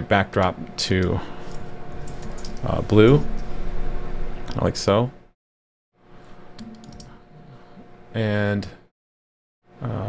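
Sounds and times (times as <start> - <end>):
faint steady hum: 0.0 - 5.3, 6.0 - 8.9
keyboard keystrokes: 6.6 - 7.1.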